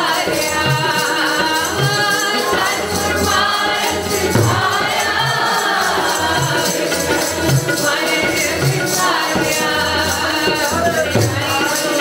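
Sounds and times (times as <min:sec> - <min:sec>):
group singing a hymn: 0:00.0 - 0:12.0
harmonium: 0:00.0 - 0:12.0.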